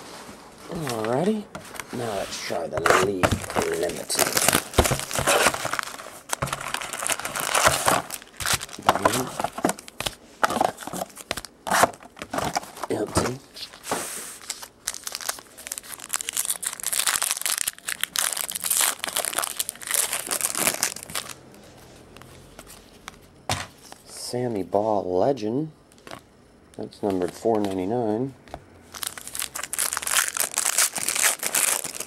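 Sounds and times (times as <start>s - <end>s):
wrappers tearing and crinkling: 2.7s - 21.4s, 28.9s - 32.0s.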